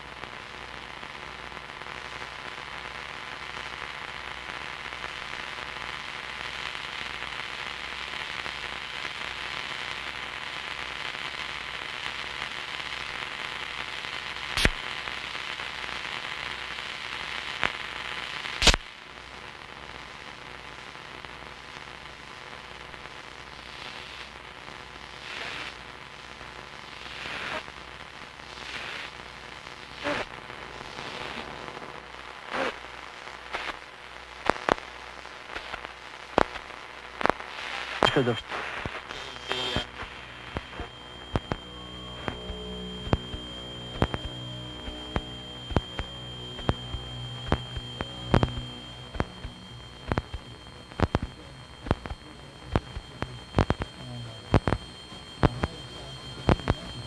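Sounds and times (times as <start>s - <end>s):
faint hum: 0.0s - 57.0s
scattered crackles: 0.0s - 57.0s
static hiss: 0.0s - 57.0s.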